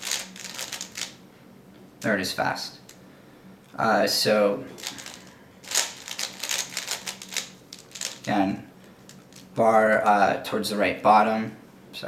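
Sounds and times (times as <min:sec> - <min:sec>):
puzzle cube clacking clicks: 0:05.0 - 0:08.3.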